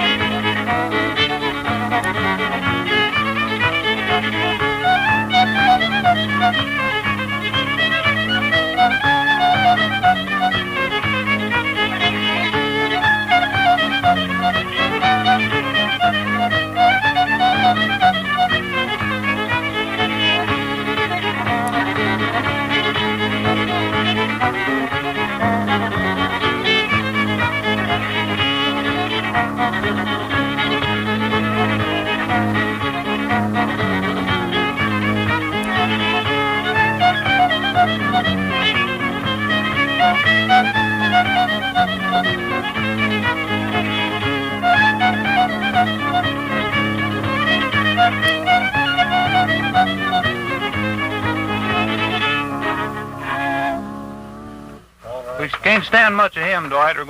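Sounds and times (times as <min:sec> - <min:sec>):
lively fiddle tune: 0:00.0 - 0:57.0.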